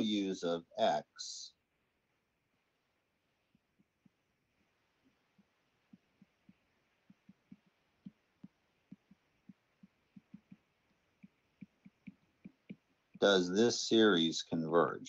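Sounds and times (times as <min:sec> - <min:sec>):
stylus tapping on tablet screen: 0:03.4 - 0:13.3.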